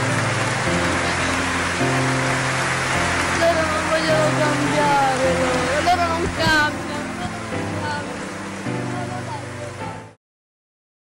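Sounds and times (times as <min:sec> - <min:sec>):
low sustained music chords: 0:00.0 - 0:10.2.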